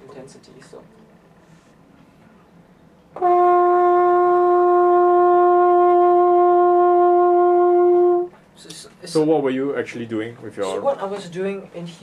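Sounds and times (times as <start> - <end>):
french horn sustained note: 3.2 - 8.3.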